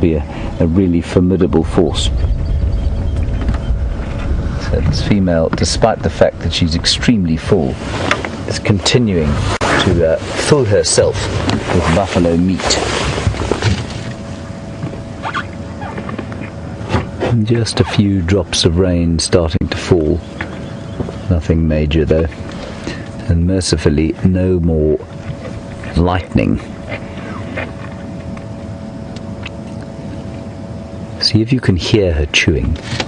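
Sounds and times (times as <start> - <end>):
faint steady hum: 0.0 - 33.0
low engine rumble: 0.0 - 33.0.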